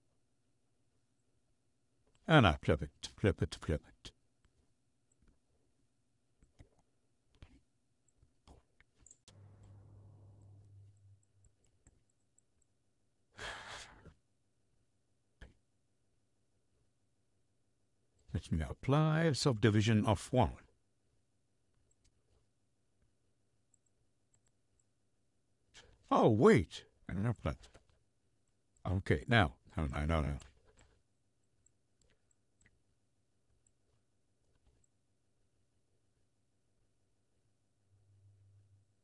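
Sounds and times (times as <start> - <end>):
computer mouse clicks: 7.4 - 12.7
person sighing: 13.4 - 14.1
man's voice: 26.1 - 27.6.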